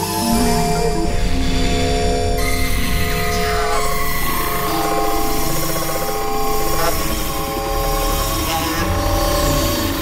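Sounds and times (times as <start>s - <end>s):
sustained drone tones: 0.0s - 10.0s
thick low rumble: 0.2s - 5.7s.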